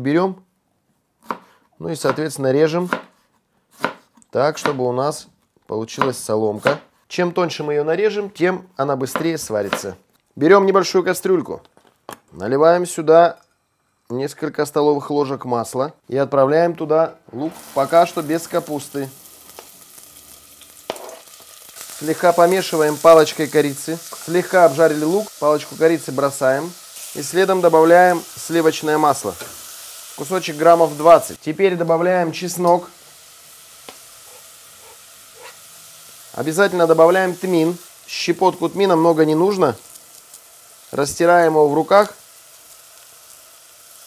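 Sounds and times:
onion sizzling in oil: 17.4 - 44.0.

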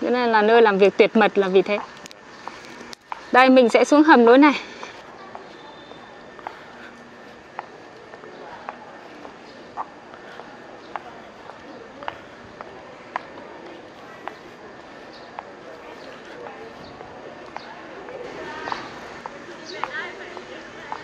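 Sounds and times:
outdoor background noise: 0.0 - 21.0
footsteps on brick paving: 0.7 - 21.0.

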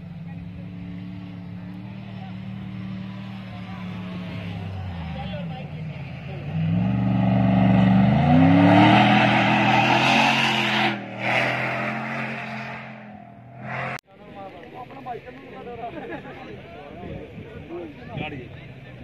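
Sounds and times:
truck engine revving: 0.0 - 14.0.

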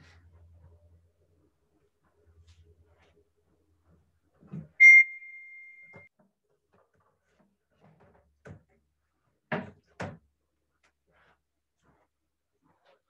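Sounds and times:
bright ringing ding: 4.8 - 6.1.

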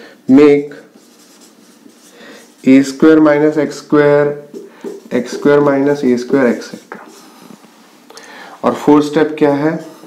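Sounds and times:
person speaking: 0.2 - 10.0
marker writing on whiteboard: 4.4 - 7.4.

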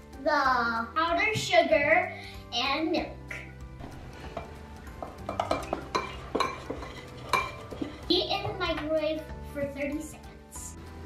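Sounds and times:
metal spoon clinking glass bowl: 4.4 - 8.1.

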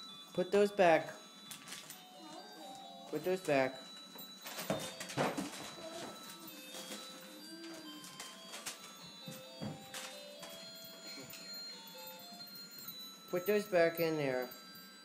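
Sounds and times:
faint music of held notes: 0.0 - 15.0.

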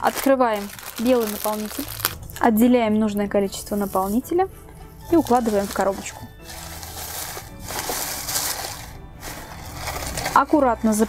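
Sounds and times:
shredded paper rustling: 0.0 - 2.4, 5.1 - 11.0
background music: 0.0 - 11.0.

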